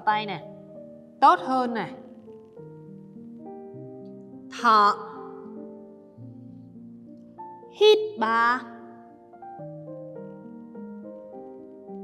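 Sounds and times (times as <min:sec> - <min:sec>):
soft slow instrumental music: 0:00.0 - 0:12.0.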